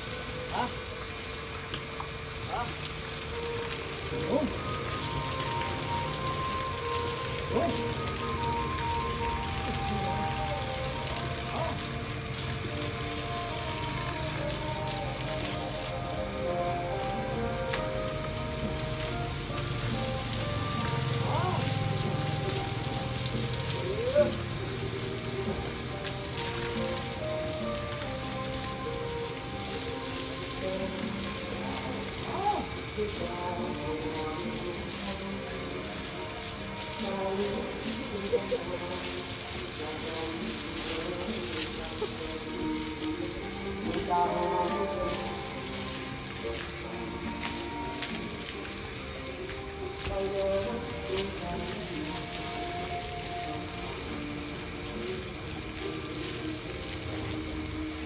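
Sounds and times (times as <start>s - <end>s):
background music with vocals: 0.0s - 58.0s
water spraying from hose: 0.0s - 58.0s.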